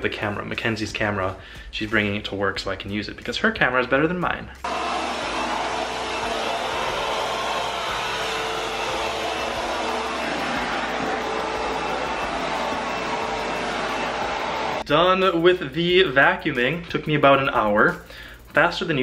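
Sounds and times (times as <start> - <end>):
vacuum cleaner on carpet: 4.7 - 14.8.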